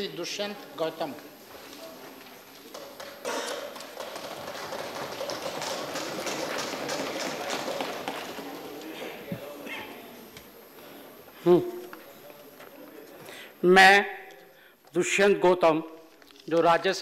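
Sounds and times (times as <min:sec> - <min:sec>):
murmur of voices: 0:00.0 - 0:13.8
people thumping desks: 0:01.3 - 0:11.4.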